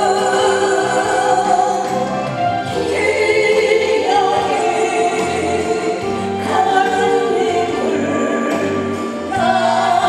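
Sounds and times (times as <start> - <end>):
instrumental accompaniment: 0.0 - 10.0
woman singing into a microphone: 0.0 - 10.0.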